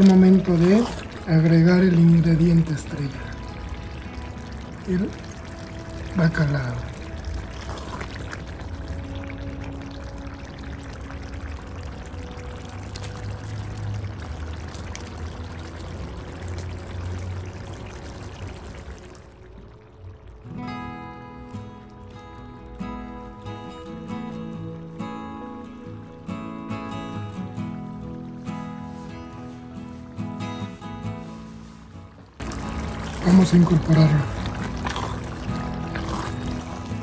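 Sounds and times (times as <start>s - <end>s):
sauce sizzling in a pot: 0.0s - 20.4s, 31.2s - 37.0s.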